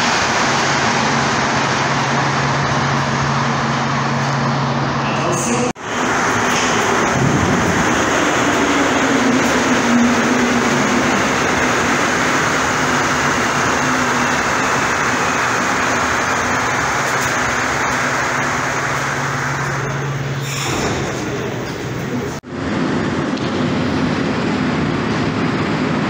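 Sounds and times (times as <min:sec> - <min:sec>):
train rolling noise: 0:00.0 - 0:26.0.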